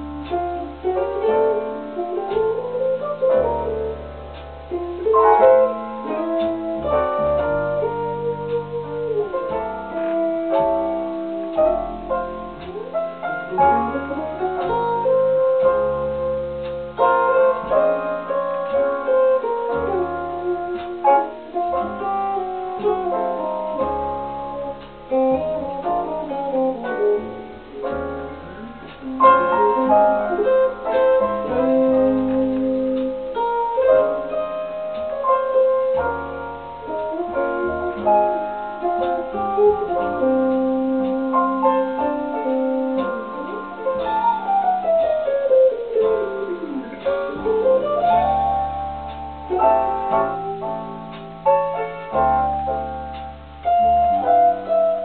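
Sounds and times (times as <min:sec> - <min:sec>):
electric guitar jazz ballad: 0:00.0 - 0:55.0.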